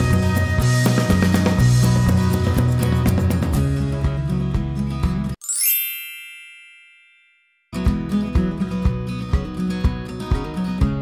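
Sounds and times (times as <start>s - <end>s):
background music: 0.0s - 6.0s
upward sweep into bright ding: 5.4s - 7.6s.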